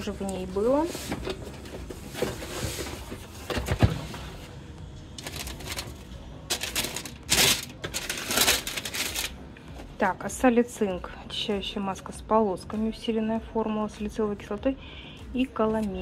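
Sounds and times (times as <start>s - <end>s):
tissue paper crinkling: 5.2s - 9.4s.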